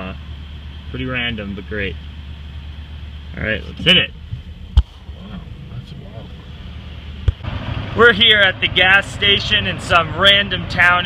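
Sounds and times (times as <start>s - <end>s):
car cabin rumble: 2.7s - 7.6s.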